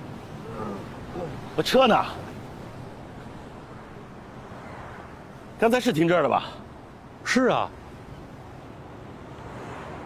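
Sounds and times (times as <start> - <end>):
sea surf: 0.0 - 10.0
wind: 0.0 - 10.0.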